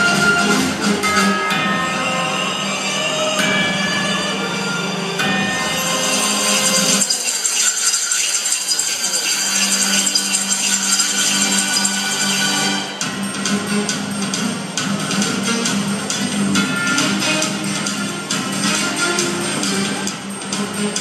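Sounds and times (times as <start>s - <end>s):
music over hall sound system: 0.0s - 21.0s.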